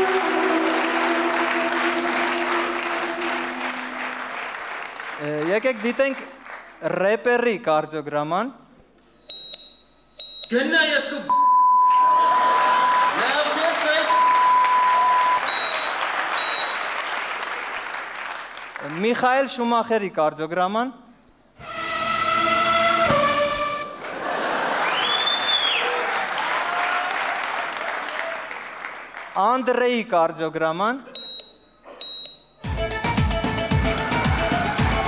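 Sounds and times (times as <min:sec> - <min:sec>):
audience applauding: 0:00.0 - 0:06.8, 0:11.9 - 0:19.2, 0:23.3 - 0:29.4, 0:33.8 - 0:35.0
electronic beeps: 0:14.1 - 0:16.8
music with strong beat: 0:32.6 - 0:35.0.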